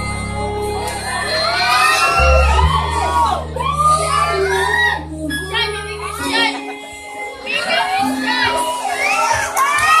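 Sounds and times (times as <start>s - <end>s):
audience cheering and shouting: 0.0s - 10.0s.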